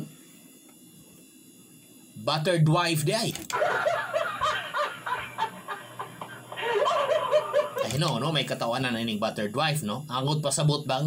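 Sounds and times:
person giggling: 3.5 - 8.0.

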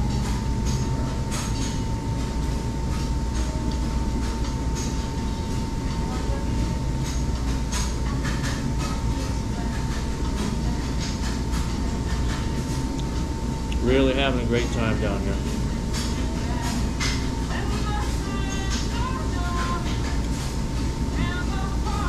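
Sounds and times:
restaurant room rumble: 0.0 - 22.0
thin continuous whine: 0.0 - 22.0.

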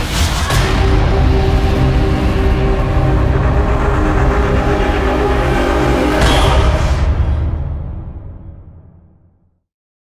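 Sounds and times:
dark cinematic music: 0.0 - 9.5.

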